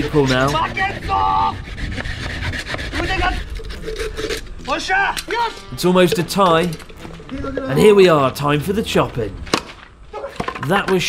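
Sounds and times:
hand saws rasping through bamboo: 0.0 - 4.4.

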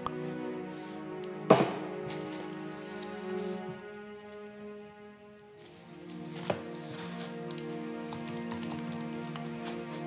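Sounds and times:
film score sustained chords: 0.0 - 10.0
computer keyboard typing: 8.1 - 9.4.

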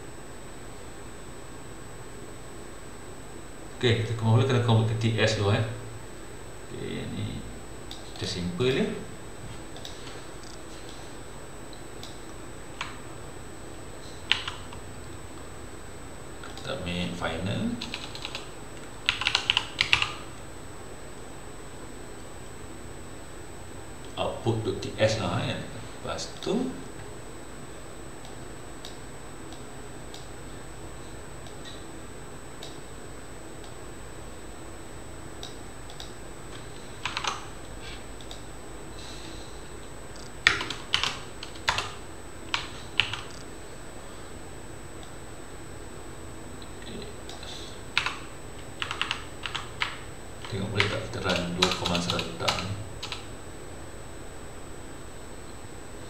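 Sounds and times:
faint room hum: 0.0 - 56.0
keyboard typing: 14.3 - 14.8, 17.8 - 20.2, 37.0 - 37.5, 40.2 - 43.4, 48.8 - 53.2
computer mouse clicks: 35.4 - 36.2, 38.2 - 38.4.

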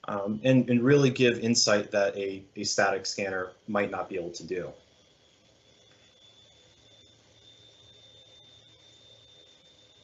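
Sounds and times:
faint steady hiss: 0.0 - 10.0
thin high steady tone: 0.0 - 10.0.

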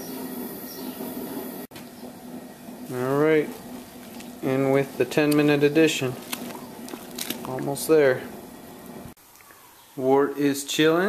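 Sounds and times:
wort boiling and bubbling: 0.0 - 9.7.

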